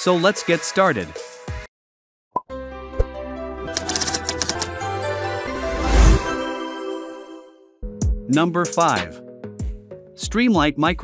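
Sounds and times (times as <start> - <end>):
intro music: 2.6 - 8.9
keyboard typing clicks: 3.7 - 4.7.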